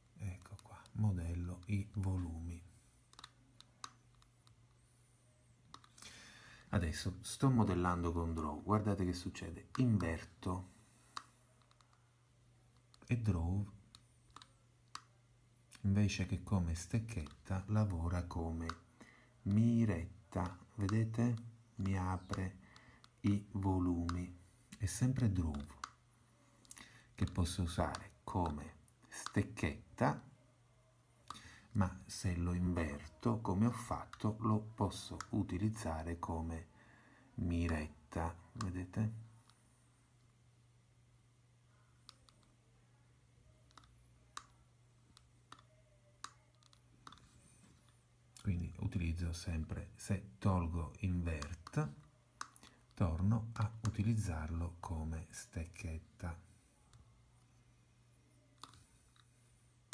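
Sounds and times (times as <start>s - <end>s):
low steady hum: 0.0s - 59.9s
computer mouse clicks: 3.1s - 4.8s, 5.6s - 6.1s, 11.0s - 12.1s, 13.8s - 15.8s, 17.2s - 17.4s, 24.0s - 26.0s, 26.6s - 28.6s, 42.0s - 42.6s, 43.6s - 48.0s, 51.4s - 53.0s, 58.6s - 59.3s.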